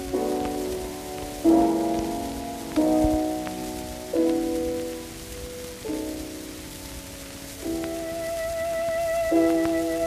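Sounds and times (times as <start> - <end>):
old record surface noise: 0.0 - 10.0
piano chords: 0.0 - 10.0.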